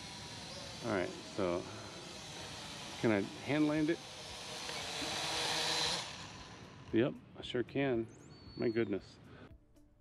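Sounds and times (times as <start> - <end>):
drone propellers buzzing: 0.0 - 7.0.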